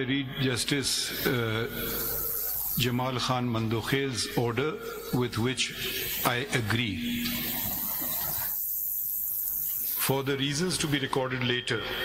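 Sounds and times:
broadcast background hiss: 0.0 - 12.0
thin high-pitched whine: 0.2 - 12.0.

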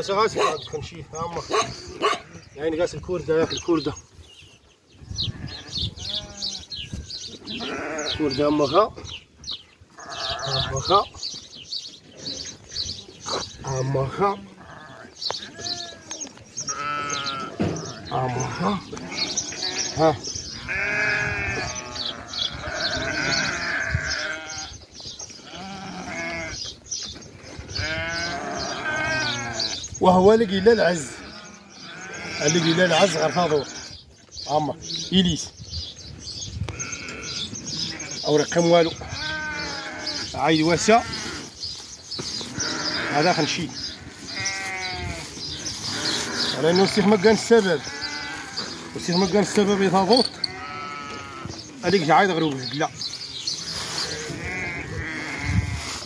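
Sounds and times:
sheep bleating: 5.3 - 6.8, 7.4 - 8.8, 10.0 - 11.0, 13.3 - 24.8, 25.4 - 26.6, 27.7 - 34.0, 36.7 - 41.5, 42.5 - 52.6, 54.0 - 55.9.

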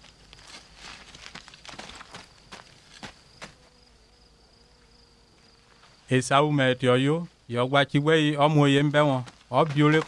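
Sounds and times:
footsteps on stony ground: 0.0 - 3.8, 8.7 - 10.0
high drone of insects: 0.0 - 10.0.

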